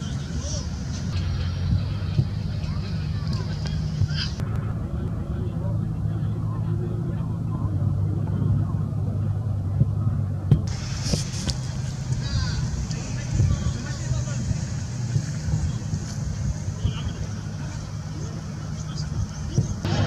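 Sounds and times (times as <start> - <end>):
steady low rumble: 0.0 - 20.0
bright hiss: 10.7 - 15.0
distant shouts of players: 12.0 - 14.0.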